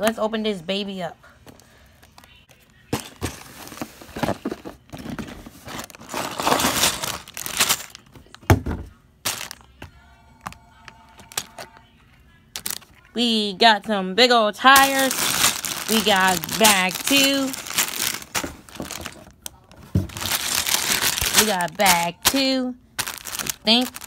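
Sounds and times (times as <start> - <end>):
plastic bags rustling: 3.2 - 8.1, 9.2 - 9.6, 11.2 - 11.7, 12.5 - 13.0, 14.6 - 24.0.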